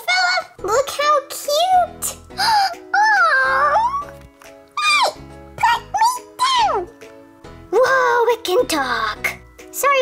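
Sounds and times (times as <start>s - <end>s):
background music: 0.0s - 10.0s
high-pitched vocal cries: 2.4s - 4.1s.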